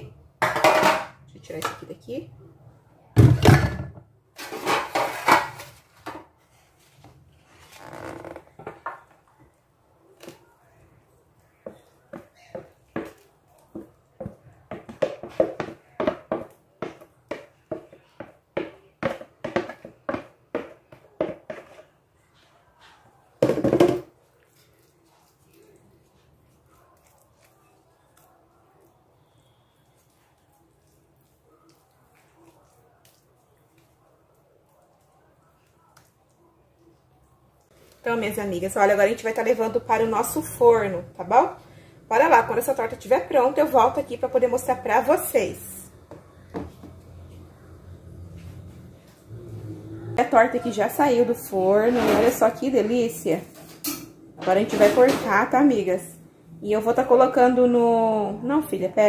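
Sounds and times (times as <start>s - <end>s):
wooden spoon scraping batter: 4.4s - 9.2s, 11.6s - 23.2s, 24.1s - 41.3s
wooden spoon knocking on pan: 11.7s - 21.8s
faint spreading sounds: 24.0s - 50.2s.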